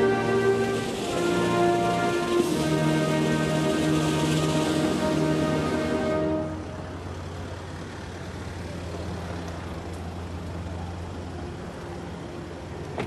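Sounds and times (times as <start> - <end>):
car engine idling: 0.0 - 12.9
outdoor background noise: 0.0 - 13.0.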